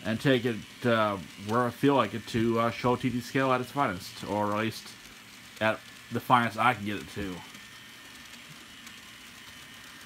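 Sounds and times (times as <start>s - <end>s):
model locomotives running on rails: 0.0s - 10.0s
thin steady whine: 0.0s - 10.0s.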